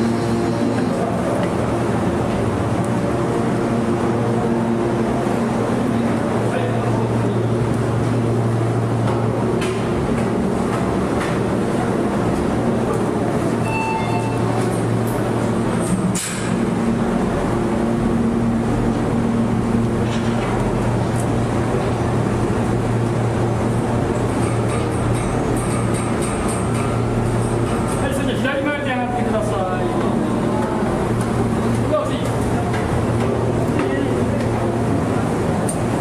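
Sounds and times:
elevator humming and rumbling: 0.0 - 36.0.

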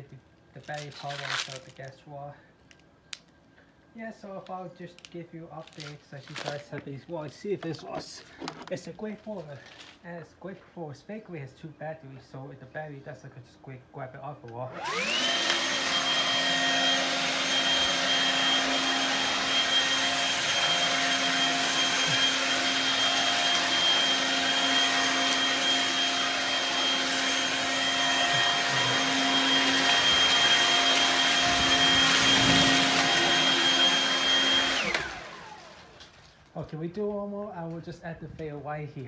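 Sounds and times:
fan winding down: 14.7 - 36.2
leaf blower running: 14.7 - 36.2.

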